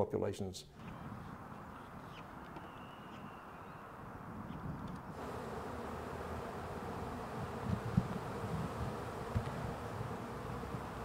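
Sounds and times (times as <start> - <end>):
honeybees buzzing: 5.2 - 11.0.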